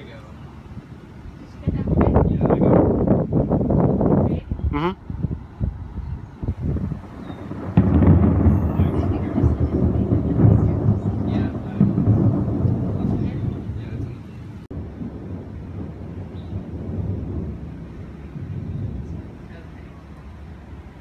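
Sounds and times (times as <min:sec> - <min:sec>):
thunder rolling: 0:01.6 - 0:21.0.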